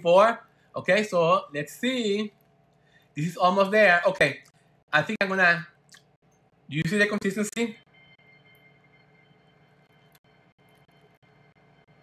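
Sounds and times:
faint high whine: 0:00.0 - 0:12.0.

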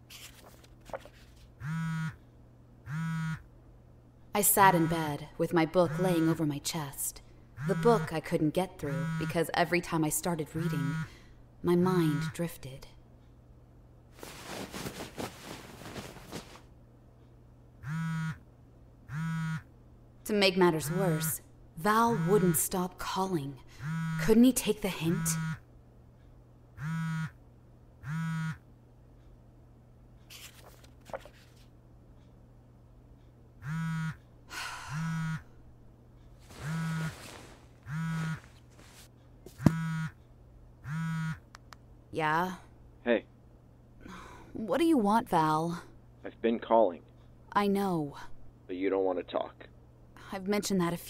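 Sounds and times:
phone vibrating buzz: 0:01.6 - 0:02.2, 0:02.8 - 0:03.5, 0:04.7 - 0:05.2, 0:05.9 - 0:06.4, 0:07.6 - 0:08.1, 0:08.9 - 0:09.4, 0:10.6 - 0:11.2, 0:17.8 - 0:18.5, 0:19.1 - 0:19.7, 0:22.0 - 0:22.7, 0:23.7 - 0:24.4, 0:25.0 - 0:25.6, 0:26.8 - 0:27.4, 0:28.0 - 0:28.6, 0:33.6 - 0:35.6, 0:36.5 - 0:38.6, 0:39.5 - 0:40.2, 0:40.8 - 0:41.5.

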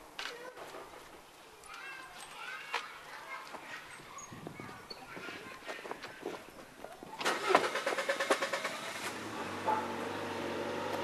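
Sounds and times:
car engine starting and idling: 0:07.2 - 0:11.0.

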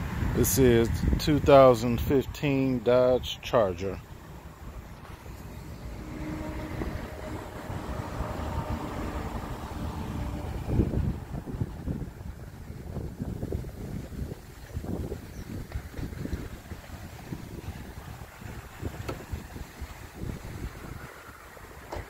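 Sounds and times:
wind buffeting microphone: 0:00.0 - 0:02.7, 0:04.0 - 0:22.0.

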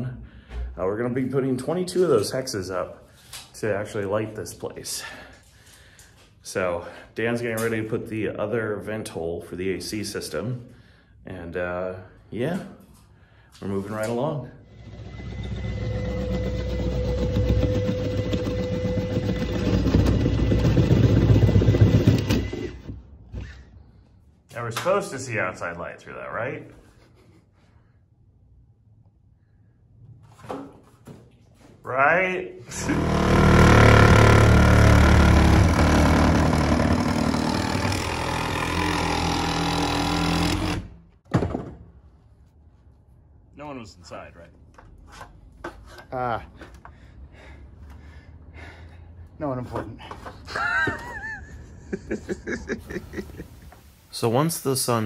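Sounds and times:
electric saw cutting wood: 0:14.7 - 0:22.9, 0:32.7 - 0:40.9.

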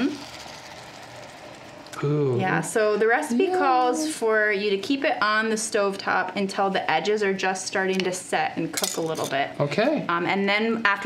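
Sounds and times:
eggs sizzling in a hot skillet: 0:00.0 - 0:04.0.

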